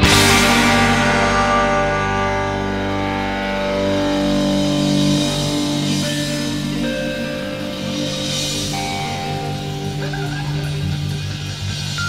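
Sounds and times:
psychedelic rock guitar chords: 0.0s - 12.0s.

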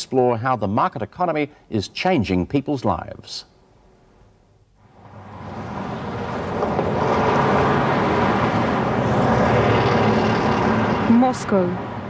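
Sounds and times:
city traffic rumble: 4.8s - 12.0s.

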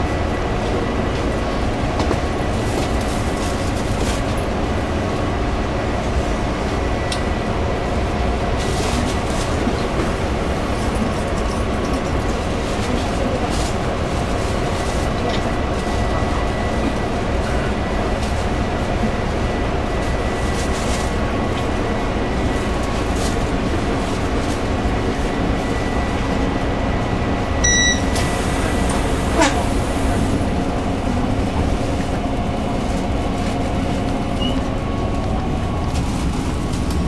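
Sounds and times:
train car rumble and hum: 0.0s - 37.0s
short electronic beep: 27.6s - 28.3s.

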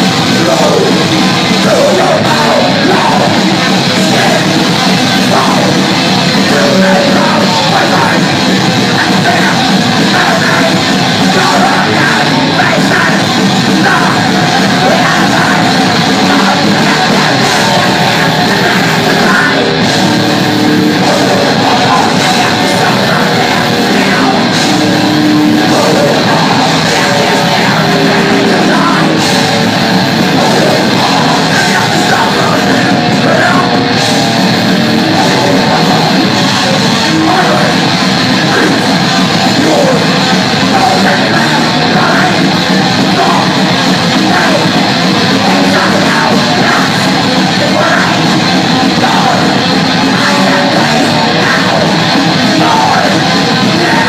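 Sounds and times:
shouted vocals: 0.0s - 54.0s
thrash metal band playing: 0.0s - 54.0s.

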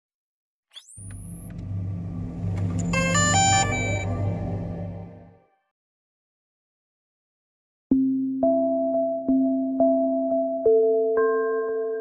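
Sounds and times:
deep steady rumble: 1.0s - 5.4s
rising whoosh: 1.0s - 5.4s
bright chime-like notes: 2.7s - 5.3s.

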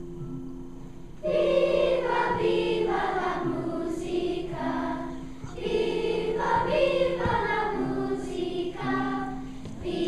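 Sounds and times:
children's choir singing: 1.2s - 10.0s.

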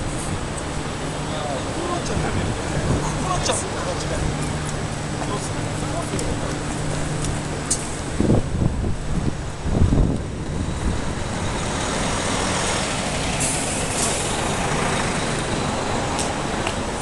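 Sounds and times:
diesel coach engine rumbling: 0.0s - 17.0s.

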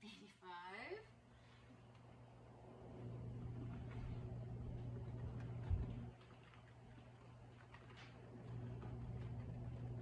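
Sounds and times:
low motor hum: 2.3s - 10.0s.

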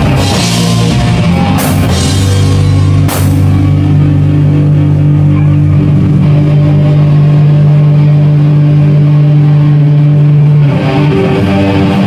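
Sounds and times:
metal band playing loud: 0.0s - 12.0s.

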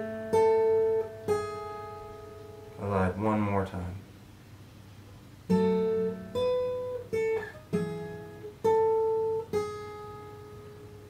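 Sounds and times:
fingerpicked acoustic guitar: 0.0s - 3.7s, 4.9s - 11.0s.

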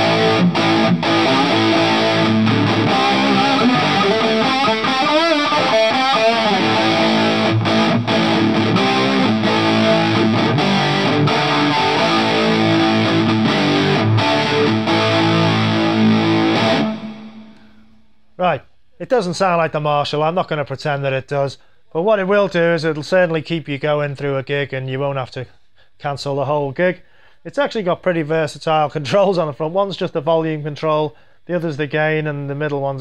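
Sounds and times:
overdriven electric guitar: 0.0s - 17.9s.

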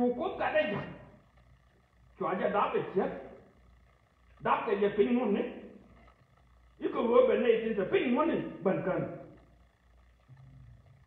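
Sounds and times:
faint low hum: 0.0s - 11.0s
man speaking: 2.2s - 3.4s, 4.4s - 5.7s.

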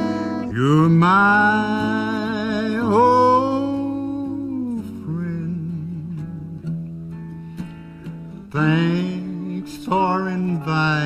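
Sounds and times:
men singing country ballad: 0.0s - 6.2s, 8.5s - 11.0s
strummed acoustic guitars: 0.0s - 11.0s.

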